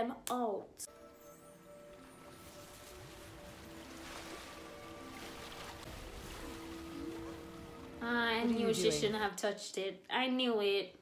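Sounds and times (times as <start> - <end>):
quiet film score: 0.0 - 10.2
water-like whooshing: 2.0 - 9.2.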